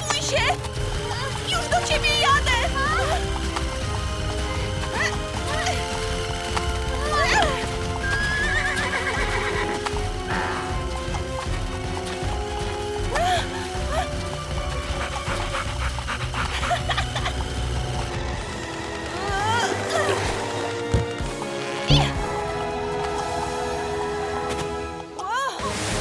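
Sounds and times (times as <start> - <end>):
hooves clip-clopping: 0.0 - 25.2
background music: 0.0 - 26.0
cartoon pony whinnying: 7.1 - 9.7.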